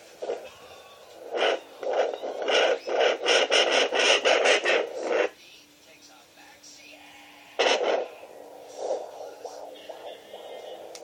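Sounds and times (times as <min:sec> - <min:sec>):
fetal heartbeat whooshing pulses: 0:00.0 - 0:05.4, 0:07.3 - 0:11.0.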